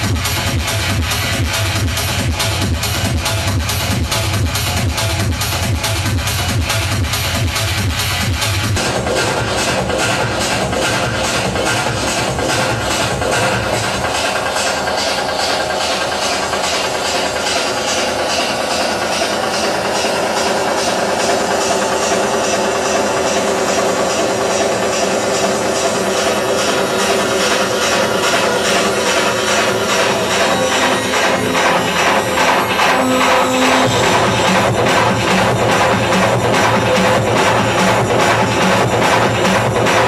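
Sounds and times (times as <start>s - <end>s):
techno dance music: 0.0s - 40.0s.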